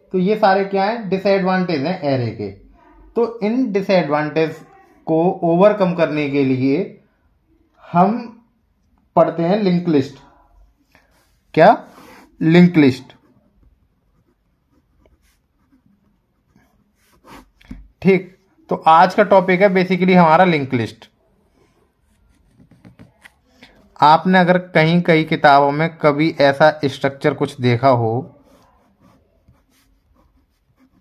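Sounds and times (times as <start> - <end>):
pen scratching on paper: 11.0 - 20.3, 21.5 - 23.8, 28.2 - 31.0.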